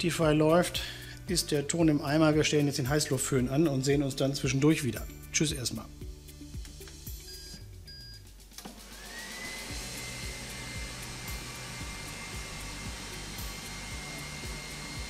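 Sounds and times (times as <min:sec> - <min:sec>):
air fryer fan whine: 0:08.8 - 0:15.0.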